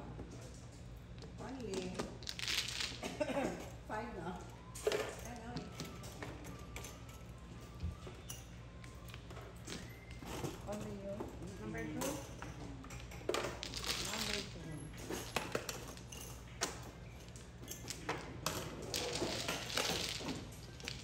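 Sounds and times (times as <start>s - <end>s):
mahjong tiles clattering: 17.2s - 21.0s.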